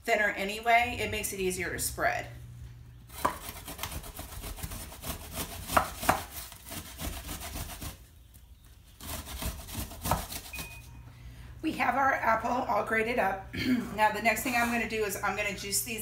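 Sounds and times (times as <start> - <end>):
apple grated on metal grater: 3.2 - 8.0.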